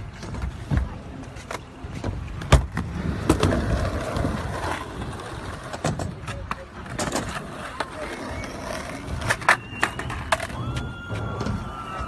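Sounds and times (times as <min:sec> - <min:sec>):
skateboard clacks: 0:00.0 - 0:12.0
skateboard wheels rolling on concrete: 0:00.0 - 0:12.0.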